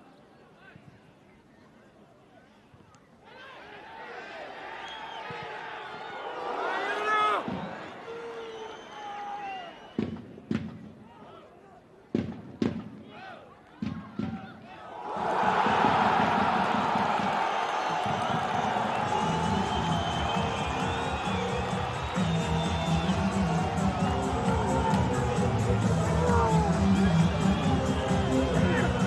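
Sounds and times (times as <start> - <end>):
stadium crowd roaring: 3.2 - 10.0, 13.1 - 29.0
players shouting: 3.3 - 9.7, 13.1 - 29.0.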